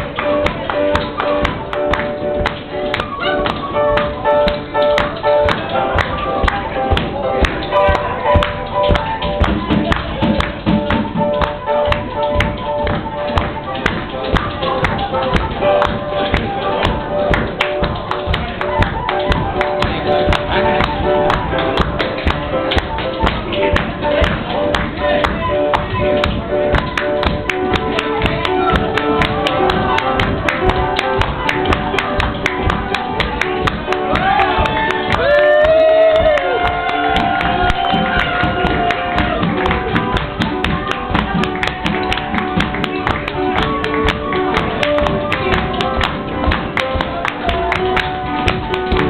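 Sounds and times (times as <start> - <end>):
piano playing: 0.0 - 49.0
tap shoes striking floor: 0.5 - 49.0.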